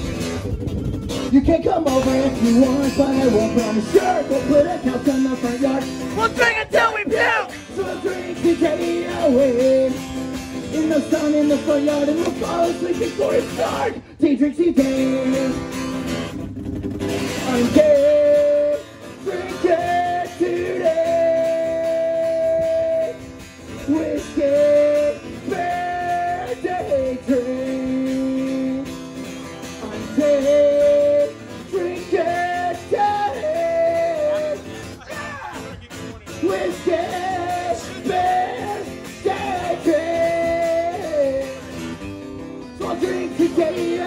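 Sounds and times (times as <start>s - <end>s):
acoustic guitar strumming: 0.0s - 44.0s
man singing: 1.2s - 15.8s, 17.3s - 29.0s, 29.8s - 41.9s, 42.7s - 44.0s.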